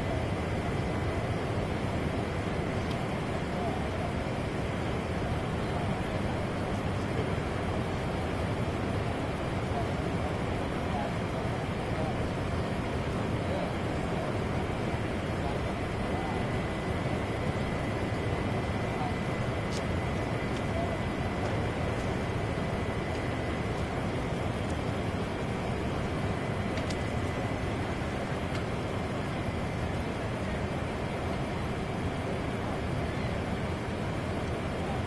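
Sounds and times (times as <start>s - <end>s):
steady outdoor roar: 0.0s - 35.0s
faint voices: 2.8s - 35.0s.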